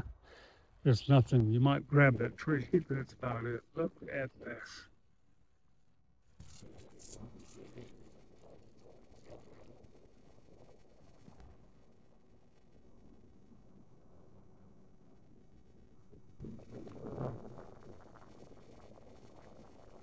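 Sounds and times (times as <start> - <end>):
low steady hush: 0.0 - 5.4
rustling scratchy noises: 6.4 - 11.7.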